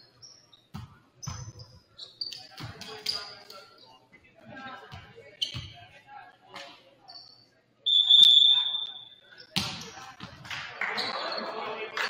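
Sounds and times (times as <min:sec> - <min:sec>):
referee's whistle blast: 0:07.9 - 0:09.1.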